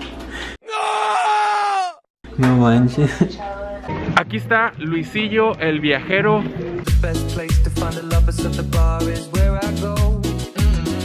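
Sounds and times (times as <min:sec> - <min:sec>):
person crying out high: 0:00.6 - 0:02.0.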